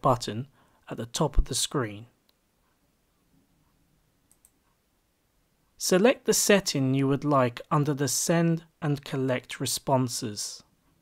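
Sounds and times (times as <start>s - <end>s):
computer mouse clicks: 4.3s - 4.8s.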